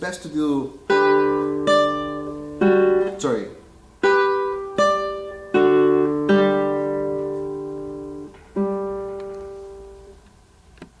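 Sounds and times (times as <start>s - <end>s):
classical guitar plucking: 0.8s - 10.2s.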